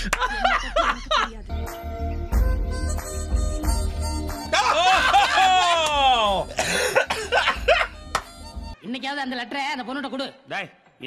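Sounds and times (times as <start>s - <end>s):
men shouting and laughing: 0.0s - 1.3s, 4.4s - 8.0s.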